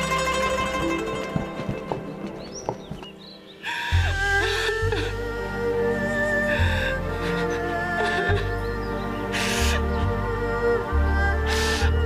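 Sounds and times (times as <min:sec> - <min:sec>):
dramatic score music: 0:00.0 - 0:12.0.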